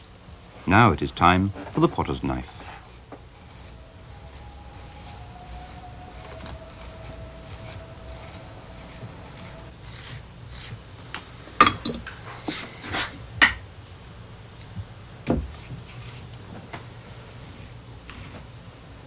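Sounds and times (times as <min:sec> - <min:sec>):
knife scraping clay: 0:02.5 - 0:10.8, 0:15.5 - 0:16.3.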